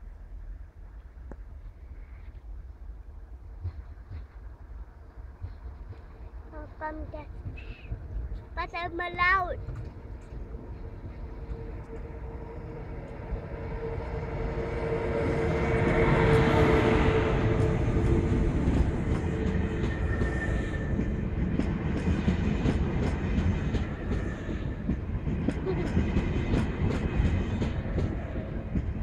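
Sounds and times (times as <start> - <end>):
train hum passing: 0.0 - 29.0.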